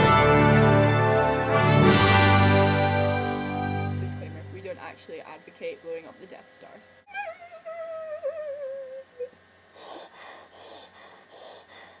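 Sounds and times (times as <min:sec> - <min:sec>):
woman wailing: 0:07.1 - 0:09.4
short breathy bursts: 0:09.7 - 0:12.0.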